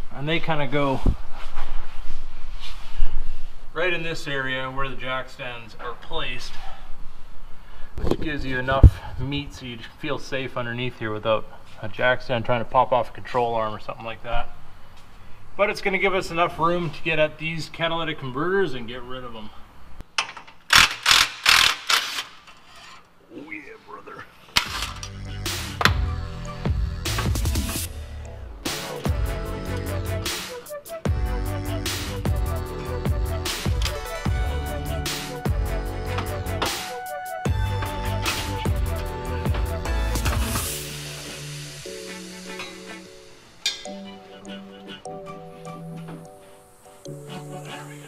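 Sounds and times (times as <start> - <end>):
electronic music with heavy bass beat: 25.1 - 45.8.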